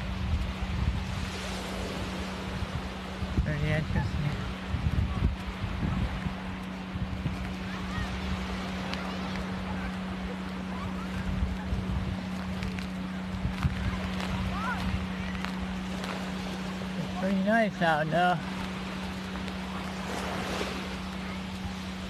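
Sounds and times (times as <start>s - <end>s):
small waves washing onto sand: 0.0s - 22.0s
steady low hum: 0.0s - 22.0s
wind buffeting microphone: 0.0s - 22.0s
faint distant voices: 4.1s - 22.0s.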